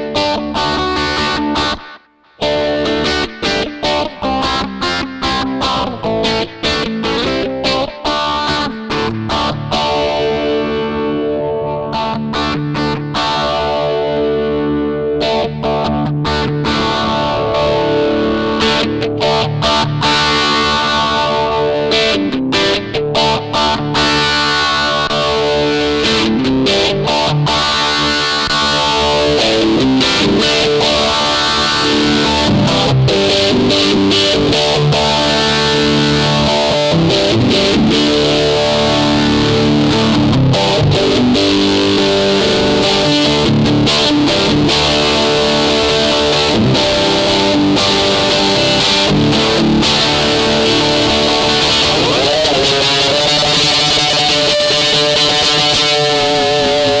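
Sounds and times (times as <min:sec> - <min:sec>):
distorted electric guitar: 0:00.0 - 0:57.0.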